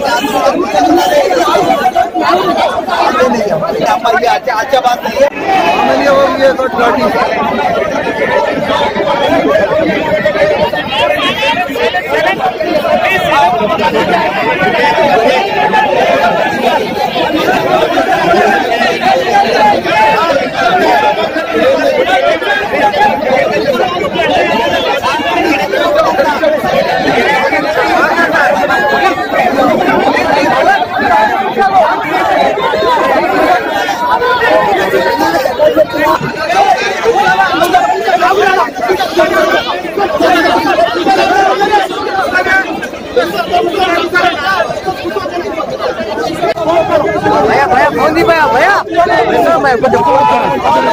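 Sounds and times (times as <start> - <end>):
crowd babble: 0.0 - 50.9.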